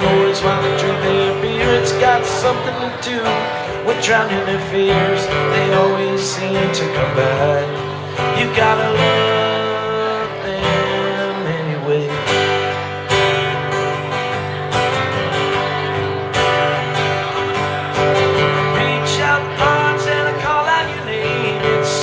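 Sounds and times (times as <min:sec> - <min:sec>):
acoustic guitars strumming chords: 0:00.0 - 0:22.0.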